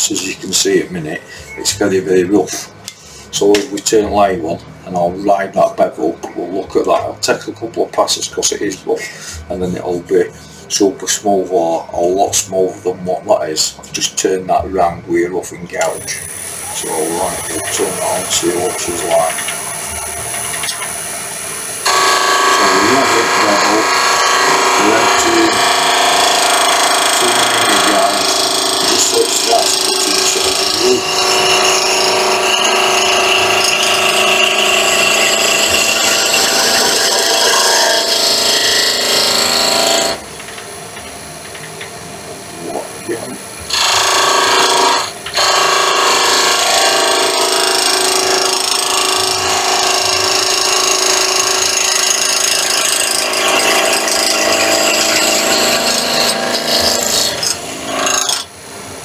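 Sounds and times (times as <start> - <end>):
wood lathe running: 15.8 - 40.6, 42.6 - 58.5
gouge shaving wood on lathe: 16.7 - 19.6, 21.8 - 40.2, 43.7 - 58.4.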